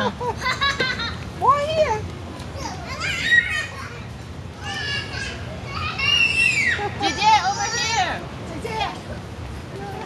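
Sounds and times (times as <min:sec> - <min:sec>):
children squealing and calling out: 0:02.6 - 0:08.2
high-pitched cries: 0:02.9 - 0:08.0.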